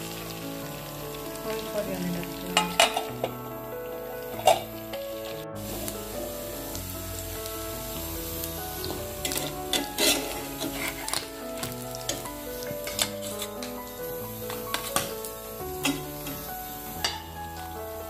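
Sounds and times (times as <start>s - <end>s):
background music: 0.0s - 18.0s
fish sizzling in a frying pan: 0.0s - 18.0s.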